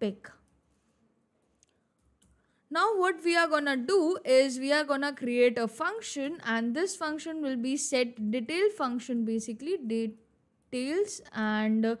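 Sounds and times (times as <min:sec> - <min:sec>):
woman speaking: 0:00.0 - 0:00.4, 0:02.7 - 0:10.2, 0:10.8 - 0:12.0.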